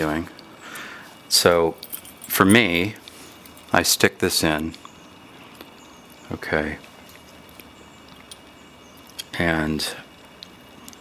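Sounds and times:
room hiss: 0:00.0 - 0:11.0.

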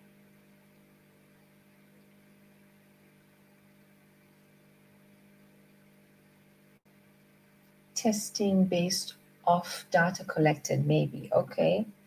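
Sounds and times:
faint hum with hiss: 0:00.0 - 0:12.0.

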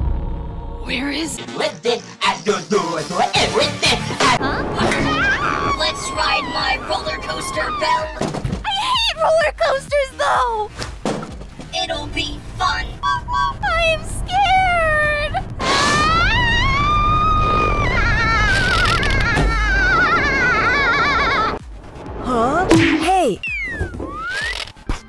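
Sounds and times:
low rumble: 0:00.0 - 0:01.4, 0:04.3 - 0:08.1, 0:11.9 - 0:18.6
cartoon voices screaming: 0:04.8 - 0:09.0.

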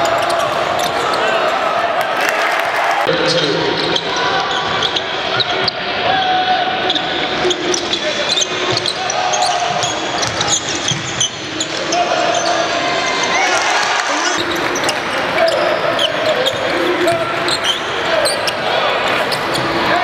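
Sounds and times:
crowd voices and shouts: 0:00.0 - 0:20.0
basketball bouncing on court: 0:09.6 - 0:11.5.

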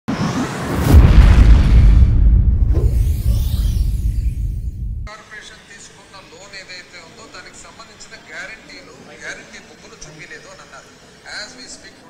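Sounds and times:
whoosh: 0:00.1 - 0:05.1
deep boom: 0:00.6 - 0:05.1
low sustained rumble: 0:00.8 - 0:05.1.

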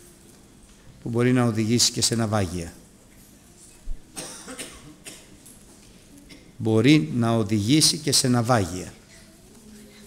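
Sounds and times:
person coughing faintly: 0:04.1 - 0:05.4, 0:06.2 - 0:06.6.

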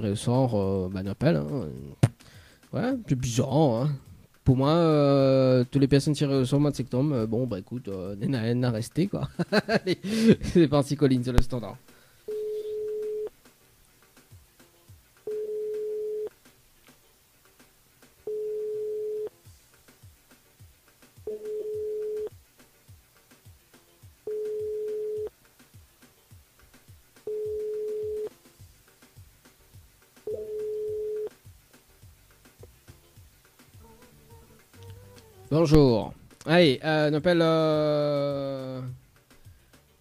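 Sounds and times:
telephone ringback tone: 0:12.3 - 0:13.3, 0:15.3 - 0:16.3, 0:18.3 - 0:19.3, 0:21.3 - 0:22.3, 0:24.3 - 0:25.3, 0:27.3 - 0:28.3, 0:30.3 - 0:31.3.

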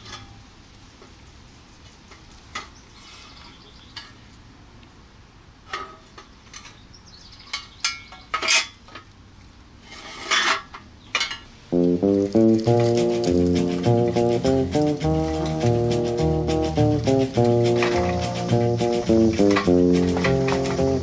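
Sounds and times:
toy truck metallic clinks and scrapes: 0:07.5 - 0:09.1, 0:09.8 - 0:11.5
guitar-led song: 0:11.8 - 0:21.0.

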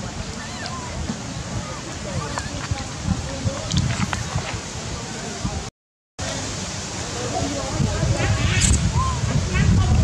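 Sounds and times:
outdoor background hiss: 0:04.6 - 0:10.0.

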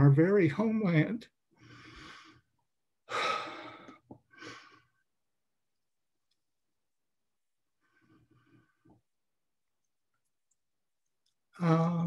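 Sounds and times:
faint breath: 0:01.6 - 0:02.5, 0:07.8 - 0:09.0.

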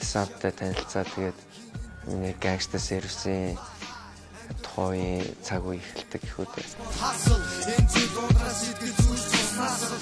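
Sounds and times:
man rapping over a beat: 0:00.0 - 0:10.0.

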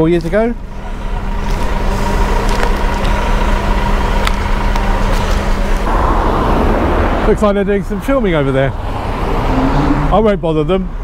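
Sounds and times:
generator humming: 0:00.0 - 0:08.5
low rumble: 0:00.0 - 0:09.0
loud rushing noise: 0:03.0 - 0:10.2.

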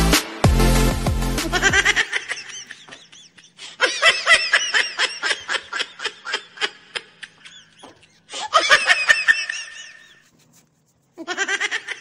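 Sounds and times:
high-pitched snickering laughter: 0:01.5 - 0:10.4, 0:11.2 - 0:12.0.

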